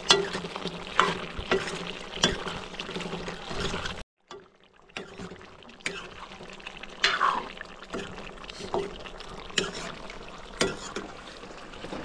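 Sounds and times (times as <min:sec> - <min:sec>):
chicken frying: 0:00.0 - 0:12.0
water poured into a wok: 0:00.0 - 0:12.0.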